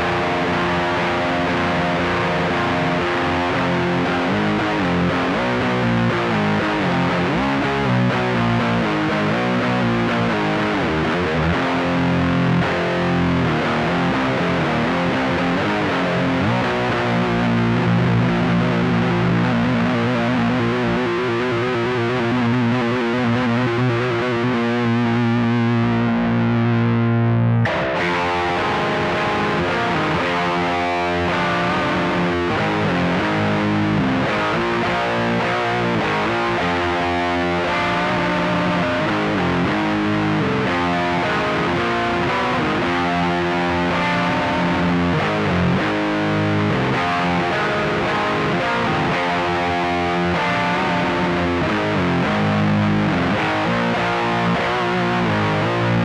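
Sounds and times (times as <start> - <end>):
distorted electric guitar riff: 0.0 - 56.0.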